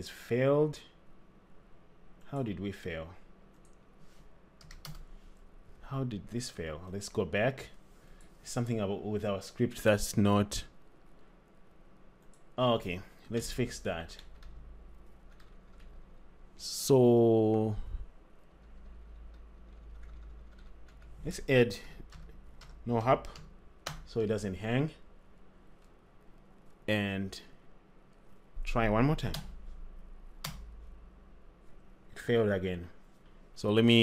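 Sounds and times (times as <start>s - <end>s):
low steady hum: 0.0s - 34.0s
computer keyboard typing: 4.6s - 5.1s, 14.2s - 16.1s, 18.6s - 21.2s, 22.0s - 24.1s.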